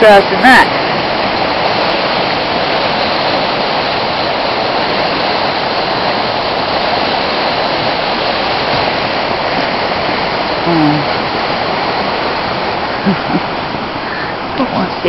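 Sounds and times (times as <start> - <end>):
river rushing: 0.0 - 15.0.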